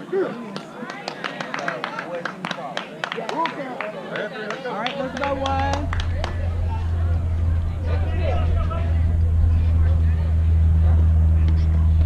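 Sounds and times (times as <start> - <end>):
voices: 0.0 - 12.0
higher droning tone: 5.0 - 12.0
low engine hum: 5.0 - 12.0.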